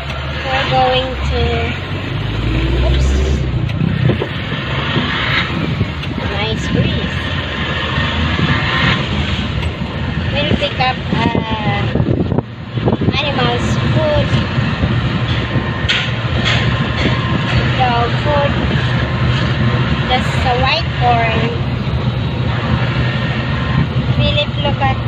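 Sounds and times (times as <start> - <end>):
vehicle engine and road noise: 0.0 - 25.0
people talking: 0.4 - 1.8, 6.1 - 7.2, 10.3 - 12.0, 13.1 - 14.4, 17.7 - 18.6, 20.1 - 21.6, 24.2 - 25.0.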